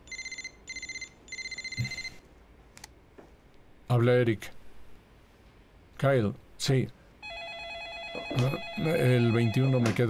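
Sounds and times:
mobile phone ringing: 0:00.1 - 0:02.2, 0:07.2 - 0:10.0.

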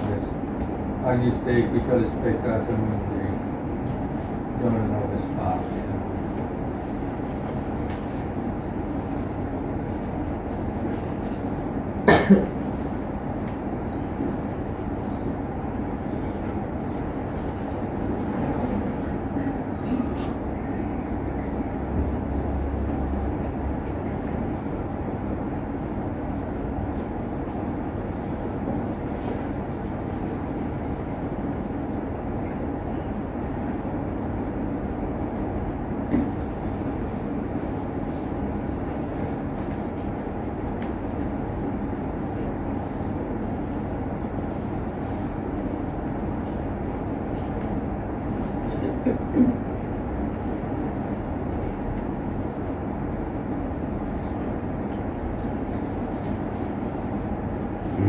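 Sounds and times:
low rumbling background noise: 0:00.0 - 0:58.0.

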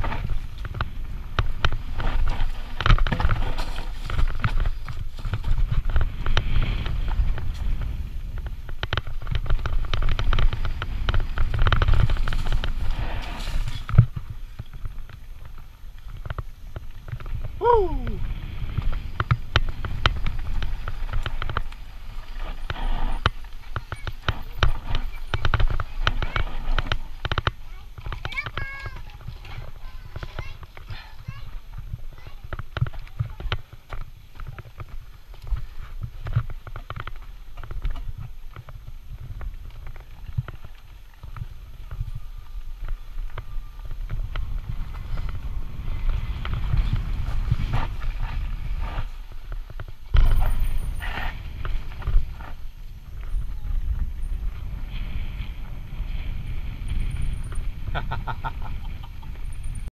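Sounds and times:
bike clicks and knocks: 0:00.0 - 0:17.6, 0:18.6 - 0:31.0
wind rumble on microphone: 0:00.0 - 0:59.9.

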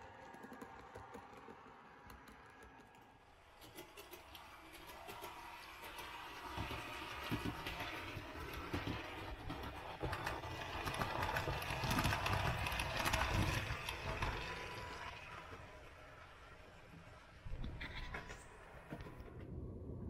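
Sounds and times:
model train rumbling past: 0:04.2 - 0:17.4.

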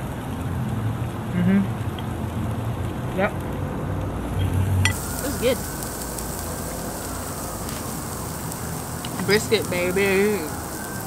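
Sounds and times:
meat sizzling on a grill: 0:00.0 - 0:11.0.

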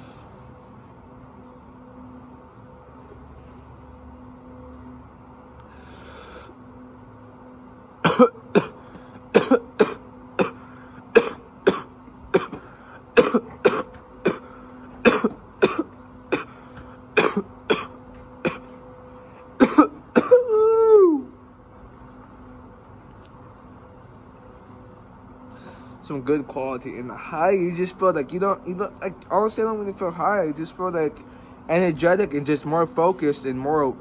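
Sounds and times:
man coughing hard: 0:08.0 - 0:18.8, 0:19.6 - 0:20.6.

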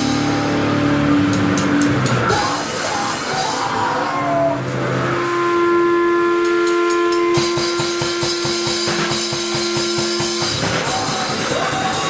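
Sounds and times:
drum kit fast hits: 0:00.0 - 0:04.1, 0:06.5 - 0:12.0
electric guitar amp feedback: 0:00.0 - 0:12.0.

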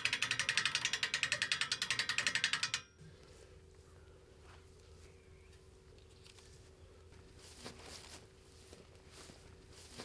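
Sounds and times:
ratchet winch clicking rapidly: 0:00.0 - 0:03.0.

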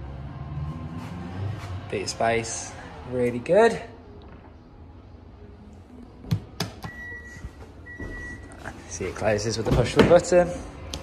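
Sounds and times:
high warning beep: 0:06.9 - 0:08.5.

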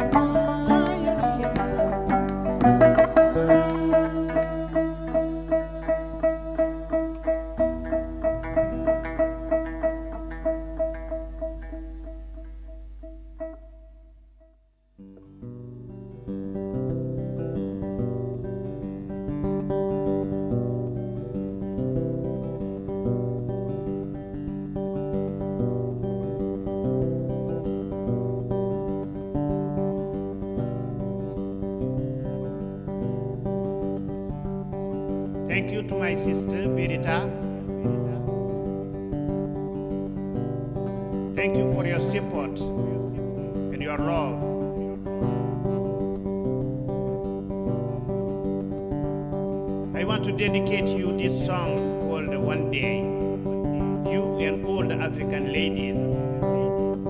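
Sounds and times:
fingerpicked guitar with bass notes: 0:00.0 - 0:57.0
plucked guitar figure: 0:00.0 - 0:57.0.

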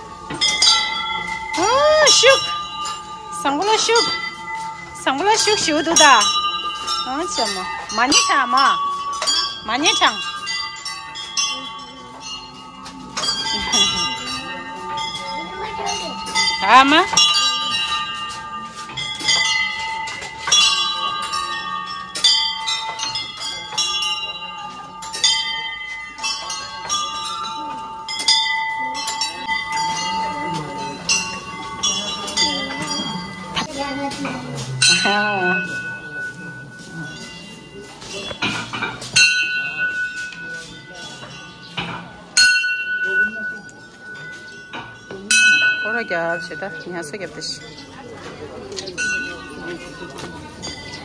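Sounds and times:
prayer wheel bells ringing: 0:00.0 - 0:51.0.

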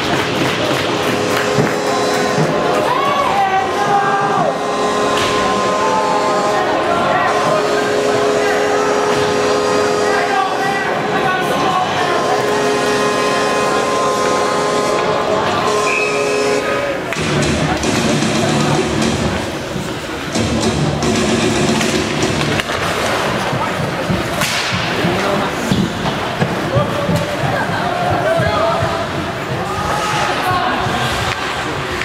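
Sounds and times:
sticks and puck clacking: 0:00.0 - 0:05.4, 0:21.7 - 0:32.0
voices in a rink: 0:00.0 - 0:20.8, 0:21.4 - 0:32.0
music: 0:17.2 - 0:19.5, 0:20.3 - 0:22.8.

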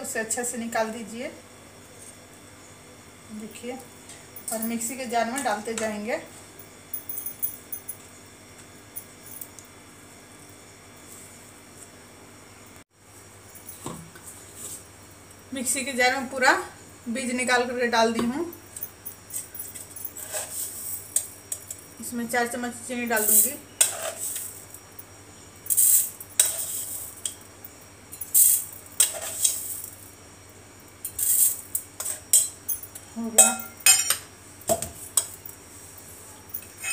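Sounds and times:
steady low hum: 0:00.0 - 0:36.9
metal spoon clinking and scraping: 0:23.2 - 0:24.6, 0:25.7 - 0:27.4, 0:28.2 - 0:29.7, 0:31.1 - 0:34.2.

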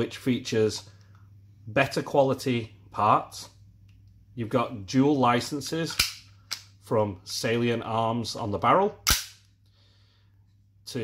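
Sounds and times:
pistol slide metallic snap: 0:05.9 - 0:06.7, 0:09.0 - 0:09.5.

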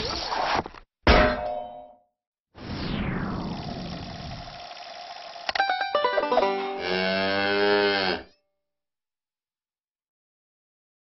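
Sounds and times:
metallic clang: 0:01.1 - 0:02.0.

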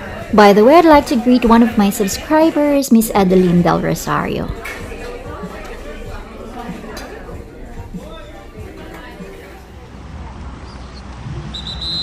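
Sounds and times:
high whistle blast: 0:11.4 - 0:12.0.

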